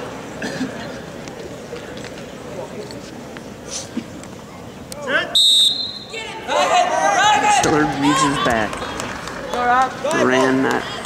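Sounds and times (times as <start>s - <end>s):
crowd yelling and shouting: 5.0s - 11.0s
high whistle blast: 5.4s - 6.2s.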